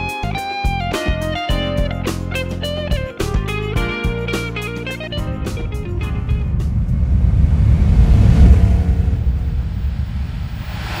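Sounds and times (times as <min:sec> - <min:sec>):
guitar music: 0:00.0 - 0:06.8
rising hiss: 0:04.8 - 0:11.0
car engine rumble: 0:05.1 - 0:11.0.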